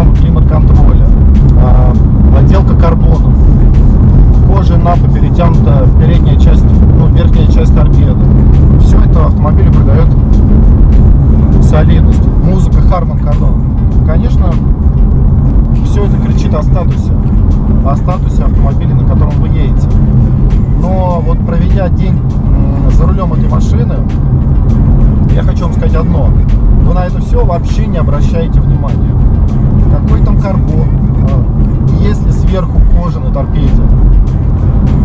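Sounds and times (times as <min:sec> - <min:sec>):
man talking: 0:00.0 - 0:03.4, 0:04.4 - 0:10.2, 0:11.6 - 0:14.7, 0:15.8 - 0:17.1, 0:17.8 - 0:19.9, 0:20.7 - 0:24.2, 0:25.3 - 0:29.2, 0:29.9 - 0:33.9
car rumble inside cabin: 0:00.0 - 0:35.0.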